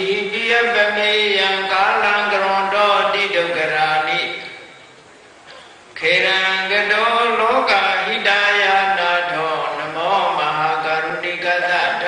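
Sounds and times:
person chanting through microphone: 0.0s - 4.7s, 6.0s - 12.0s.

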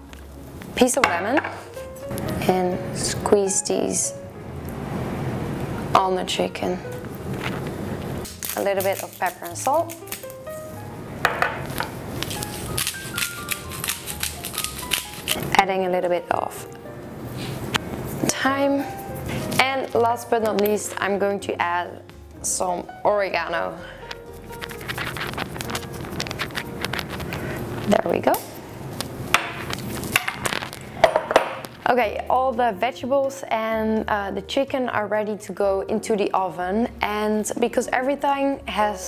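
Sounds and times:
light background music: 0.0s - 4.7s, 5.6s - 39.0s.

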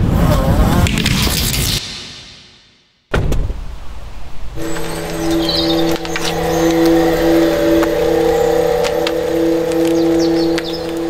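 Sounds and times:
low held hum tones: 4.6s - 11.0s.

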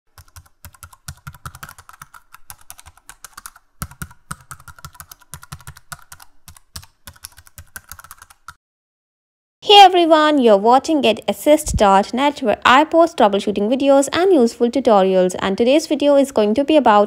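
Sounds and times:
computer keyboard typing: 0.1s - 8.6s.

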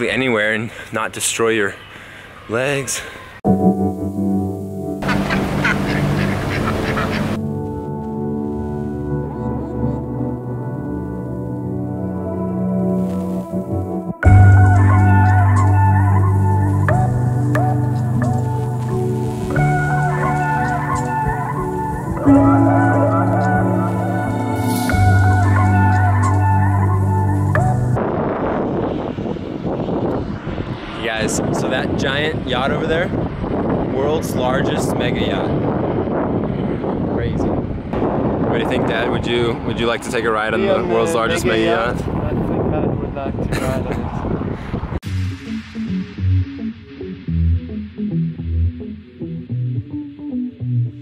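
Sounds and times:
background music: 3.4s - 28.0s, 45.0s - 51.0s
boat engine rumble: 3.6s - 28.0s
ducks quacking: 5.0s - 7.4s
wind on microphone: 13.2s - 45.0s.

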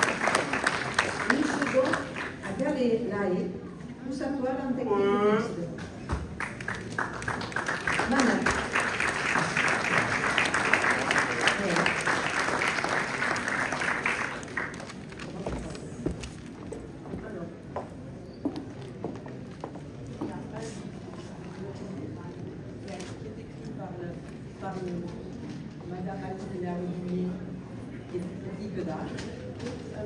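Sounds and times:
audience clapping: 0.0s - 2.6s, 6.2s - 15.4s.

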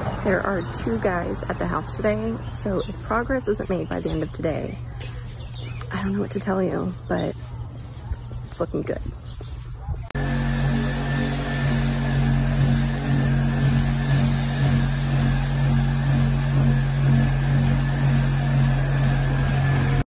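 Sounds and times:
power tool cutting pipe: 10.2s - 20.0s.

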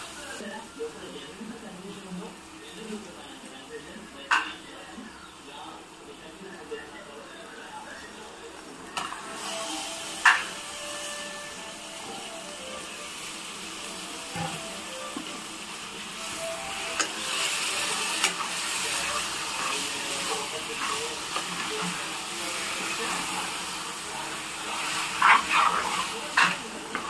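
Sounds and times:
meat sizzling in hot oil: 0.0s - 1.2s, 8.5s - 27.0s.

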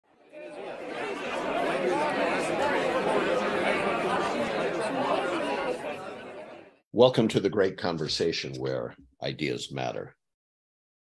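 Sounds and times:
crowd chatter: 0.1s - 7.1s.

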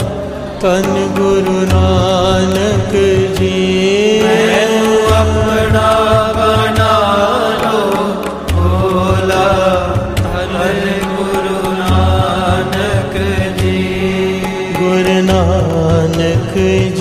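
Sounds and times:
steady drone: 0.0s - 16.9s
mantra chanted to slow melody: 0.6s - 17.0s
low drum beat: 4.9s - 7.2s, 8.3s - 17.0s.

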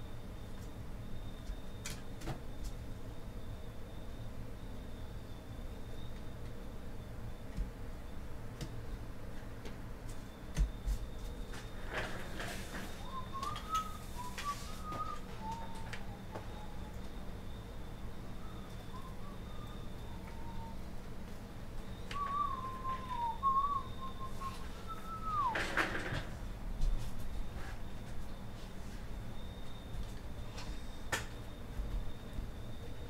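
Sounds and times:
faint high whine: 0.0s - 33.0s
person whistling a tune: 13.0s - 17.0s, 18.4s - 20.8s, 22.0s - 25.6s.

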